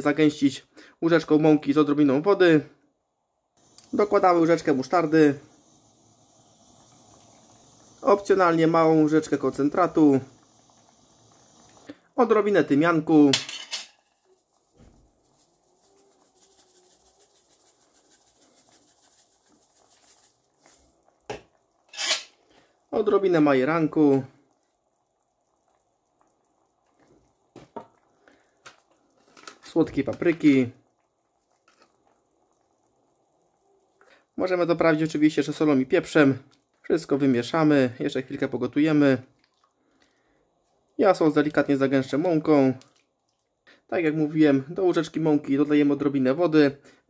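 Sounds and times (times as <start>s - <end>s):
man speaking: 3.9s - 5.5s, 8.0s - 10.3s, 12.2s - 13.4s
spice shaker patter: 12.6s - 21.4s.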